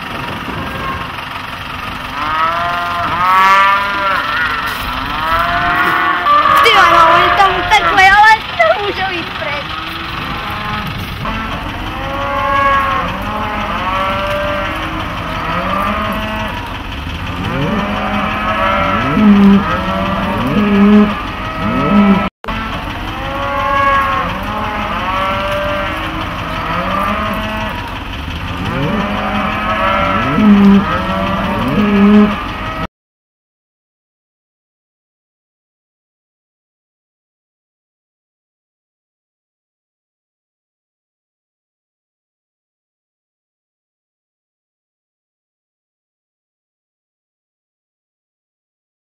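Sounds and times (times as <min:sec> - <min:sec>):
cattle mooing: 0:00.4 - 0:01.2, 0:02.0 - 0:09.0, 0:09.6 - 0:32.9.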